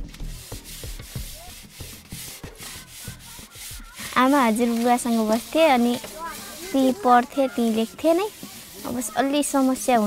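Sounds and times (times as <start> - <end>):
dishes being scrubbed: 0.3 - 10.0.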